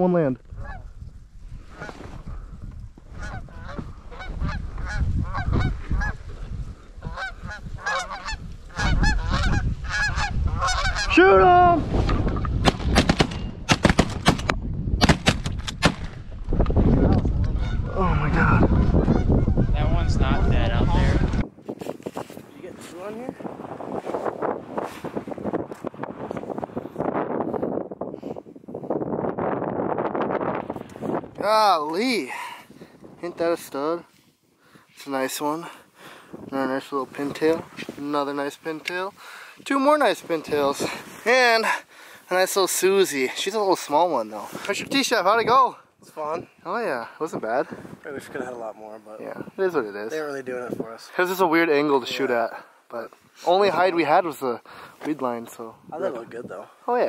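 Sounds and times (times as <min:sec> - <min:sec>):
geese honking: 0:03.2 - 0:06.3, 0:07.0 - 0:11.2, 0:17.4 - 0:21.5
shotgun shots: 0:12.6 - 0:16.2.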